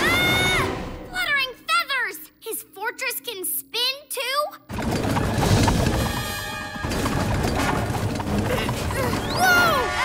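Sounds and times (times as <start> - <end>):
cartoon action music: 4.7 - 10.0.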